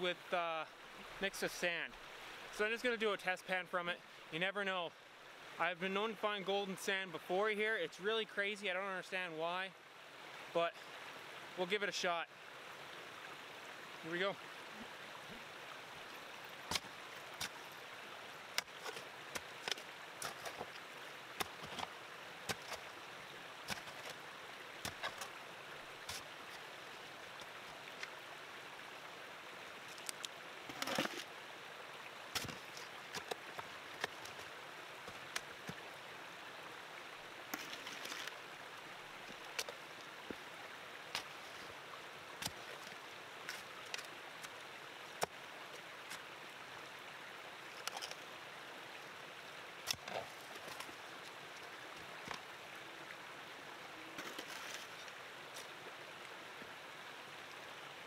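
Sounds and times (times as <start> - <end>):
creek running: 0.0 - 58.0
shovel scraping stones: 16.6 - 17.8, 18.5 - 22.9, 23.6 - 24.2, 24.8 - 25.4, 26.0 - 26.7, 30.0 - 31.3, 32.3 - 35.7, 37.5 - 38.4, 42.4 - 44.5, 49.8 - 50.9, 54.2 - 55.7.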